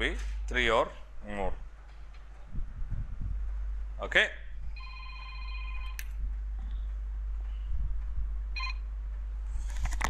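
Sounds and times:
low mains hum: 0.0 - 10.0
electronic tone: 8.6 - 8.8.

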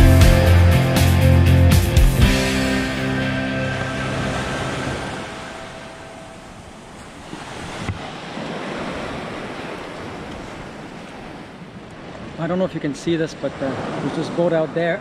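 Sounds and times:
guitar music: 0.0 - 6.6
waves washing onto shore: 2.5 - 15.0.

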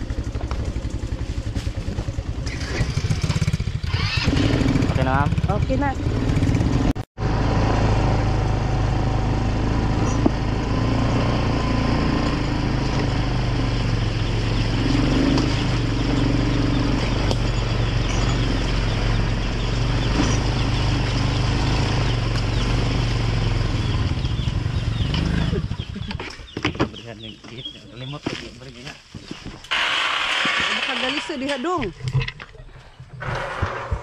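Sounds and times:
quad bike engine running: 0.0 - 27.7.

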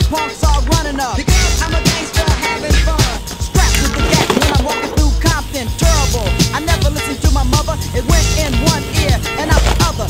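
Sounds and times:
hip hop music with heavy bass: 0.0 - 10.0.

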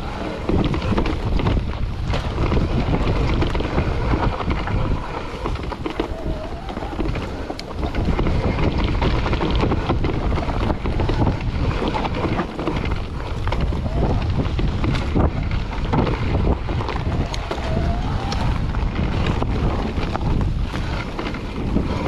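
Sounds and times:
bike knocks and rattles: 0.0 - 22.0
tyres rumbling on dirt: 0.0 - 22.0
wind buffeting microphone: 0.0 - 22.0.

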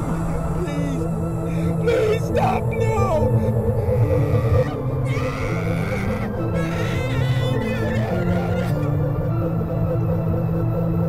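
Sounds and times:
held droning tones: 0.0 - 11.0.

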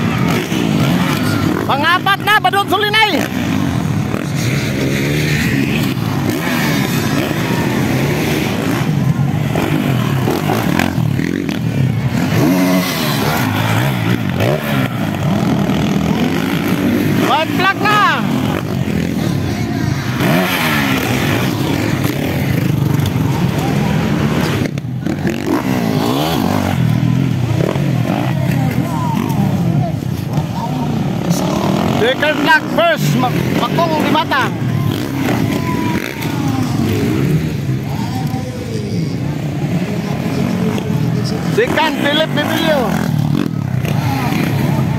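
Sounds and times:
dirt bike engines revving: 0.0 - 44.9
people's voices: 0.0 - 44.9.

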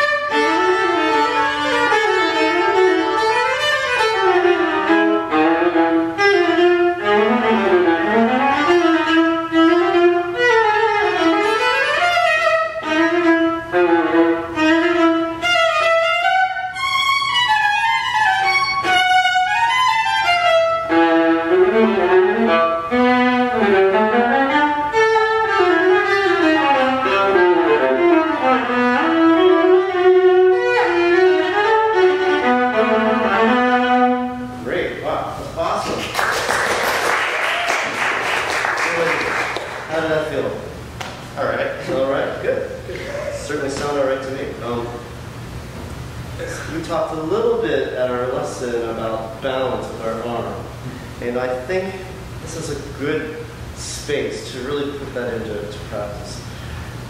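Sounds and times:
viola playing bowed melody: 0.0 - 34.6.

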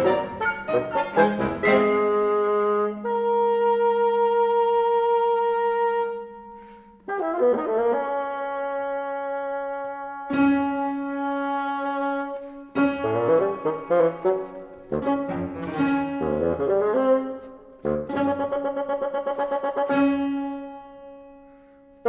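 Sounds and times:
chamber ensemble with bassoon: 0.0 - 22.0.

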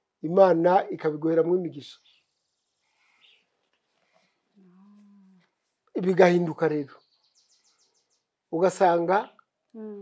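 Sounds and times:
person murmuring mm: 9.8 - 10.0.

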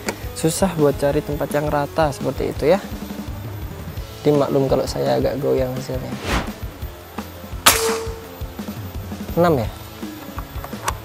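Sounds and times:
air rifle shot: 7.7 - 8.4.

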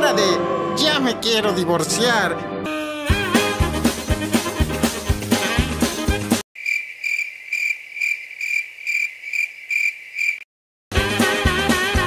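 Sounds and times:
background music: 0.0 - 6.4, 10.9 - 12.0
crickets chirping: 6.6 - 10.5.

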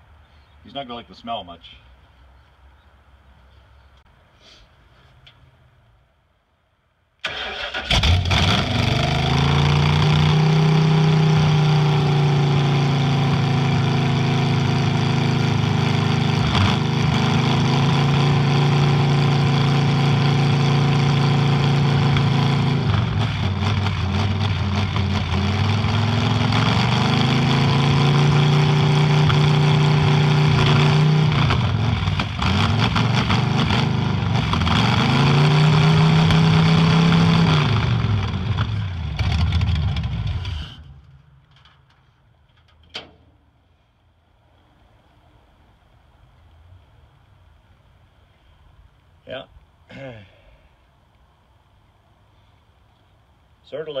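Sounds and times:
truck engine cranking and revving: 7.2 - 42.0.

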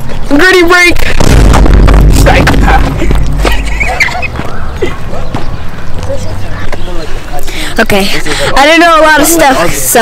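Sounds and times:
wind buffeting microphone: 0.9 - 7.3.

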